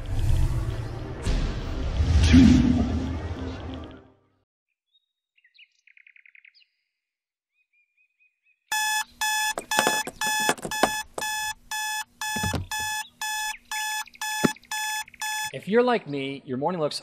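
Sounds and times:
alarm clock beeping: 8.7s - 15.6s.

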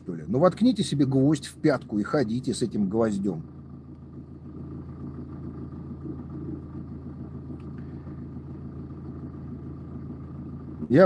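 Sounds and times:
faint constant hum: 0.0s - 11.0s
low background rumble: 0.0s - 11.0s.

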